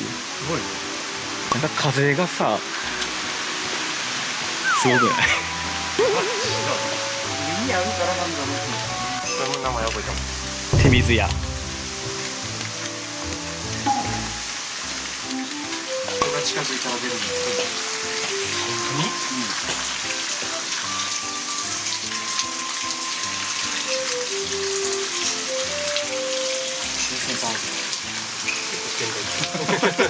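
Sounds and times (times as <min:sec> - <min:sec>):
background music: 0:00.0 - 0:30.0.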